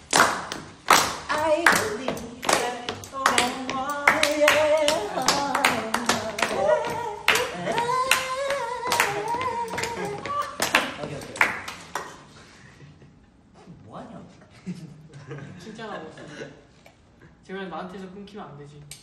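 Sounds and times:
men clapping to a beat: 0.0s - 12.2s
men singing together: 3.4s - 11.4s.

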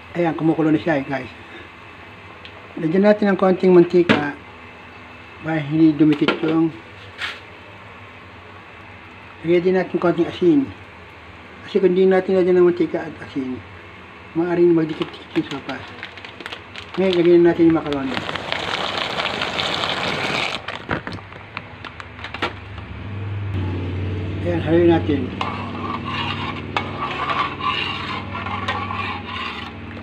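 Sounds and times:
water boiling in a pot: 15.4s - 21.3s.

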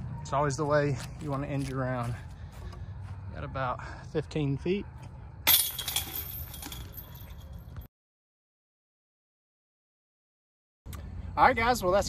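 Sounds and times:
metal chains jangling: 5.5s - 7.8s.

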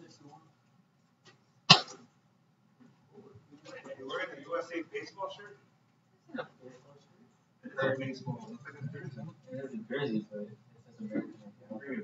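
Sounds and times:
person coughing: 1.7s - 2.0s.

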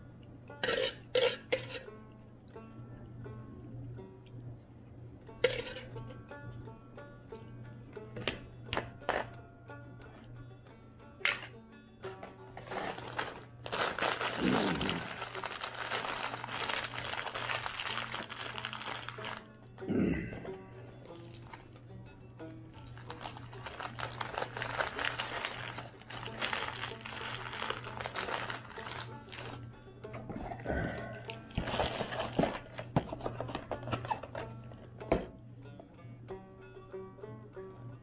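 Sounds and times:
banjo music: 0.0s - 38.0s
rustling noise: 12.6s - 19.4s.

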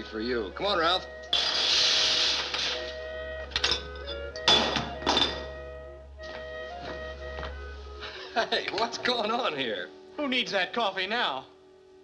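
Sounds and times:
film music with held notes: 0.0s - 12.0s.

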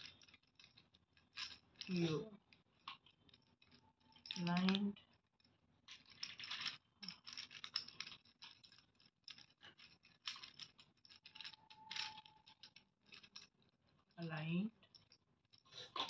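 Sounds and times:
plastic puzzle clicking and rattling: 0.0s - 14.2s.

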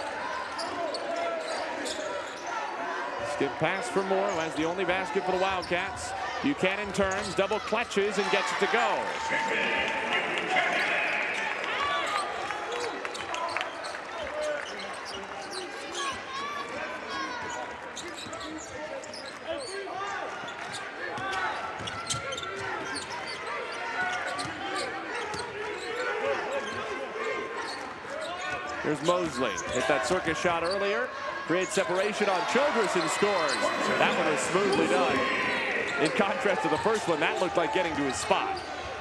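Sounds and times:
crowd noise in arena: 0.0s - 39.0s
voices: 28.9s - 38.7s.

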